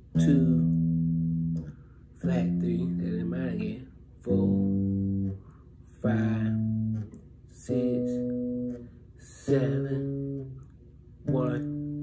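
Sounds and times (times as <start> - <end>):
electric bass guitar notes: 0.0 - 12.0.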